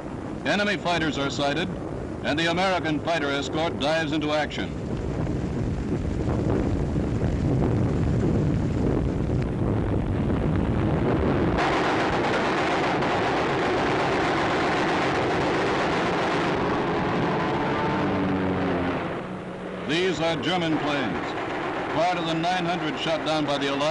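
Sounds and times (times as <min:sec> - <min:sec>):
aircraft engines running: 0:00.0 - 0:23.9
gunfire: 0:11.6 - 0:16.6.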